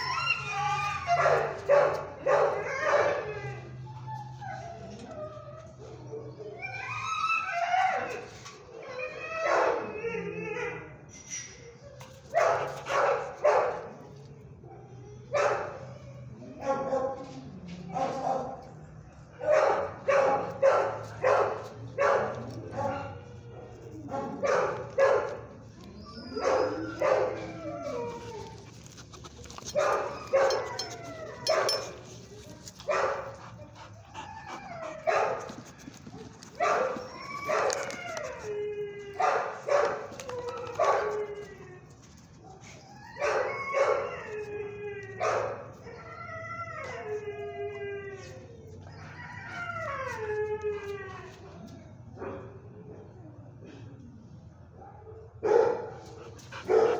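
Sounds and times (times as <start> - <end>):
dogs barking: 1.0 - 3.2, 12.4 - 13.9, 15.3 - 15.8, 19.4 - 23.1, 24.0 - 25.5, 26.4 - 27.6, 29.7 - 32.0, 32.9 - 35.5, 36.6 - 37.8, 39.2 - 40.1, 54.9 - 56.9.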